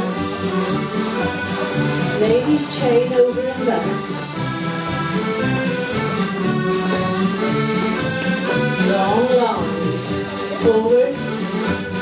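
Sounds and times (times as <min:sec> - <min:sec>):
folk dance band playing: 0:00.0 - 0:12.0.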